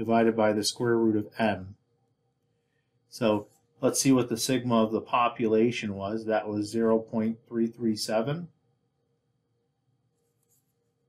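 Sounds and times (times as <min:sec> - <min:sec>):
stylus scratching on screen: 0:10.1 - 0:11.0.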